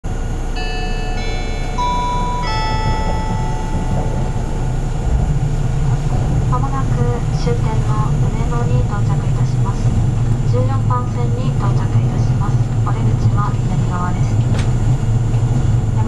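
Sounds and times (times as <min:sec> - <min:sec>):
train running rumble: 0:00.0 - 0:16.0
four-note electronic chime: 0:00.5 - 0:05.3
person making announcement: 0:06.1 - 0:14.5.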